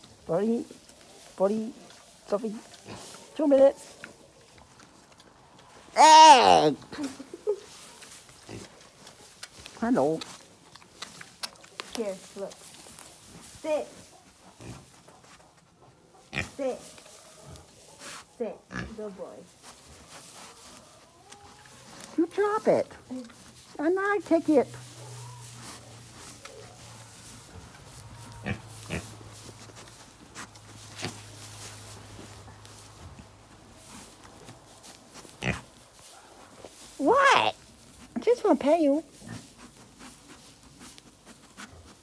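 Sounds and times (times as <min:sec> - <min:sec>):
pigs grunting: 0:28.1 - 0:29.2.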